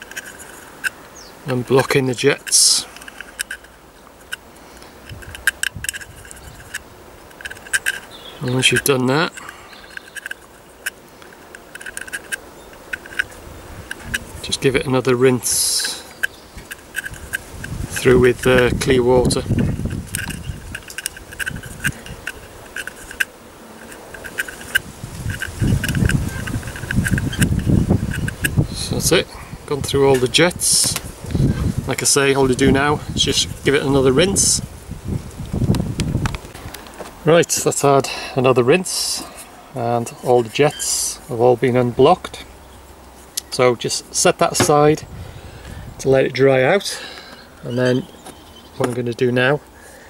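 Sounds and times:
needle clicking in metal burner: 1.7 - 31.4.

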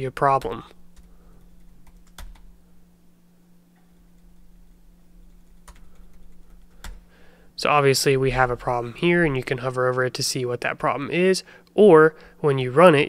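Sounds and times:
computer keyboard keystrokes: 1.0 - 2.5, 5.3 - 7.1.

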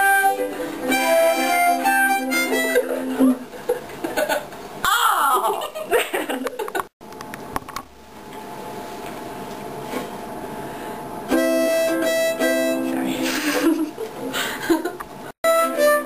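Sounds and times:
harmonica chords: 0.0 - 3.4, 11.3 - 13.6, 15.4 - 16.0
people laughing: 2.8 - 4.5, 13.2 - 15.0.

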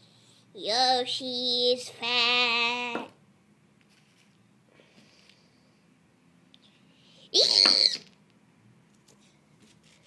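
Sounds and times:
high-pitched voice shrieking: 7.3 - 8.1.

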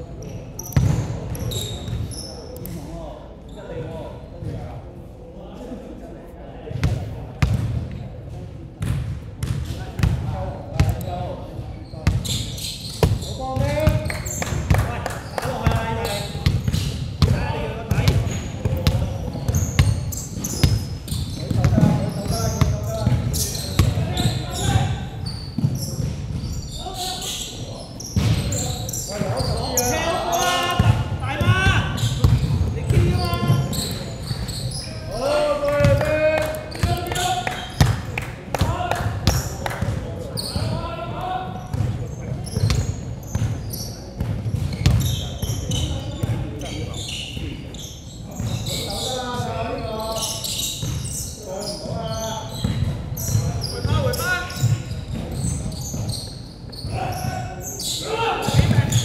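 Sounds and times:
basketball bouncing on hardwood floor: 44.2 - 45.1
players calling out: 55.4 - 59.0.

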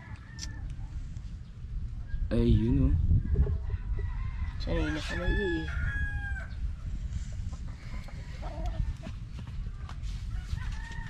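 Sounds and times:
rooster crowing: 0.0 - 0.7, 3.7 - 6.6, 10.3 - 11.0.

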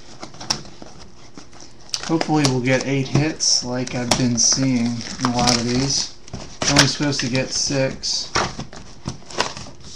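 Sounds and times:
cardboard boxes clicking and tapping: 0.1 - 7.1, 7.7 - 9.9.

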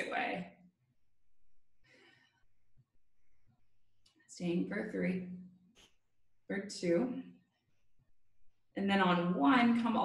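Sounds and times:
soft breath out: 1.8 - 2.6.

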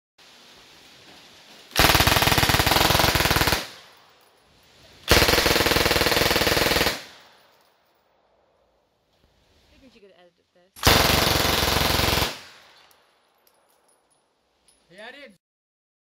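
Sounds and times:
submachine gun full-auto bursts: 1.8 - 3.8, 5.1 - 7.2, 10.8 - 12.6.

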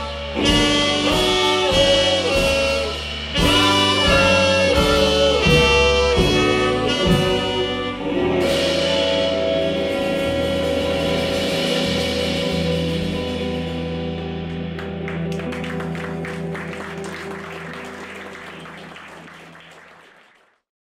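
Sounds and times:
live band final chord: 0.0 - 20.2
audience applause: 14.5 - 20.6.

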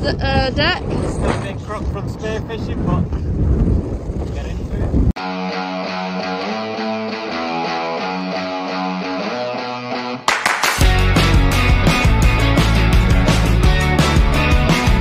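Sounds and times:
wind buffeting microphone: 0.0 - 5.2
background music: 5.2 - 15.0.

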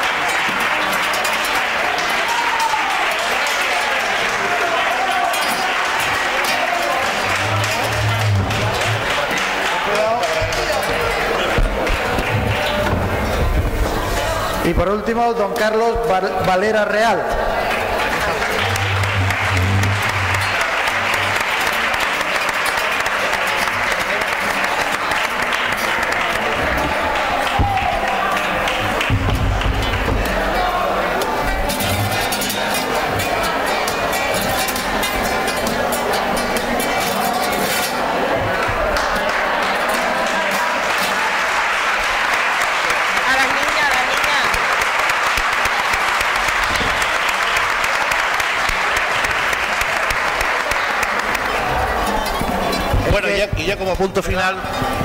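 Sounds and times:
voices: 0.0 - 42.1
audience applauding: 0.0 - 55.0.

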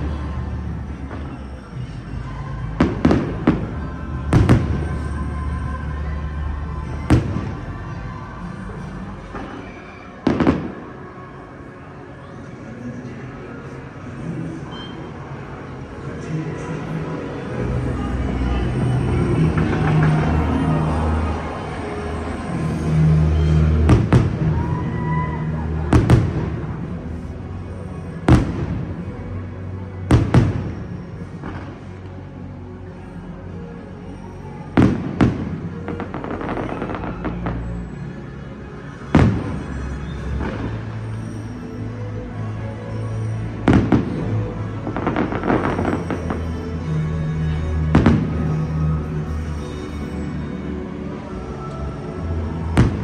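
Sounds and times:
music: 0.0 - 53.0
firework bangs: 2.8 - 5.1, 9.4 - 11.0, 23.3 - 24.8, 25.9 - 26.9, 30.1 - 31.9, 34.8 - 37.6, 39.1 - 41.4, 47.9 - 48.6, 52.8 - 53.0.

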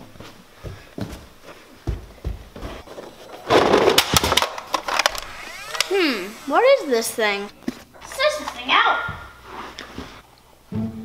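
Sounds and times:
sharp clicks: 4.8 - 6.5.

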